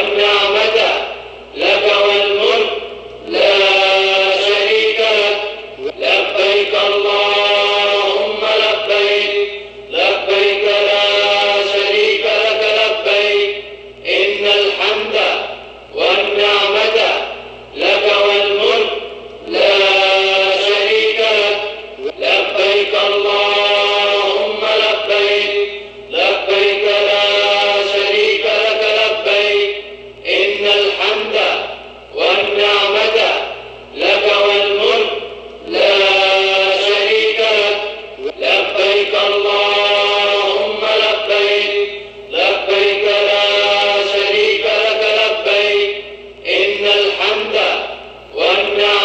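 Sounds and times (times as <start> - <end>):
voices chanting in unison: 0.0 - 49.0
breaths: 9.5 - 9.9, 25.7 - 26.1, 42.0 - 42.3.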